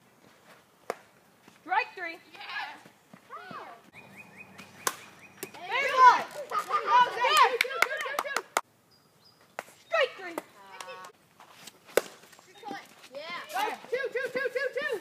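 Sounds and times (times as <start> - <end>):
players shouting: 5.4 - 8.3.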